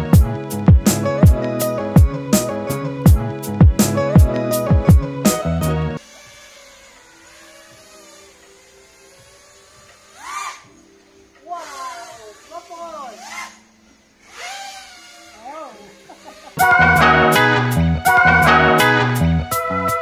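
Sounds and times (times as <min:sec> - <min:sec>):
upbeat background music: 0:00.0 - 0:06.0, 0:16.6 - 0:20.0
high-pitched voices calling out: 0:11.4 - 0:13.5.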